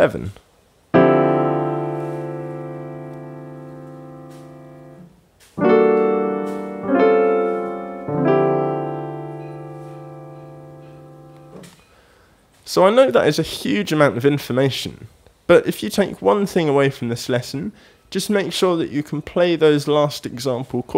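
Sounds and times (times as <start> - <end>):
piano chords: 0.9 - 11.7.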